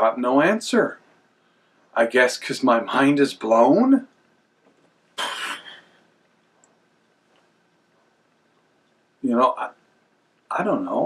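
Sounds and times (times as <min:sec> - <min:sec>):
man making explosion sound: 0:05.2 - 0:05.8.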